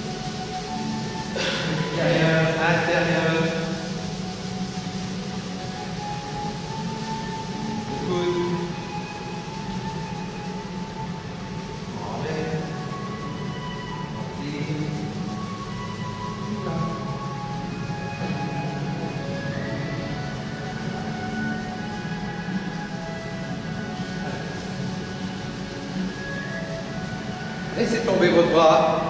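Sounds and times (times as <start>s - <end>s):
low drone: 0.0s - 29.0s
slow calm background music: 0.0s - 29.0s.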